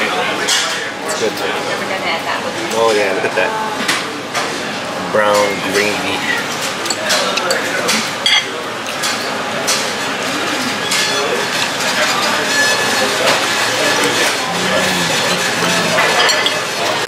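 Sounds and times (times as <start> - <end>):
restaurant background chatter: 0.0 - 17.0
metal fork scraping ceramic plate: 14.0 - 17.0.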